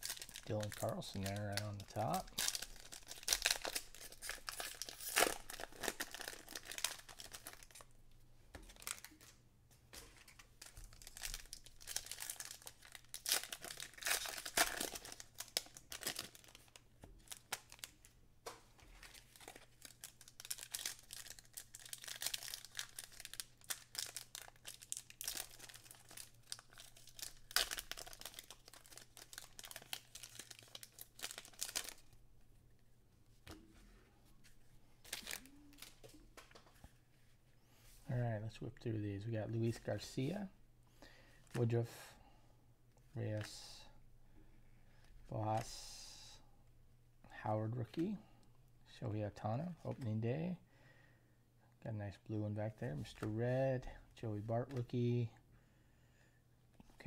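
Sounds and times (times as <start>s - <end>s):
foil wrappers crinkling and tearing: 0.0s - 7.8s, 10.2s - 17.9s, 18.9s - 32.1s.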